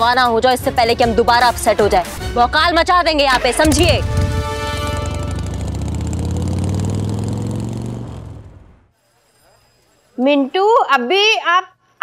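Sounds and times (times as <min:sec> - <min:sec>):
motorcycle engine pulling away: 0:03.6 - 0:08.9.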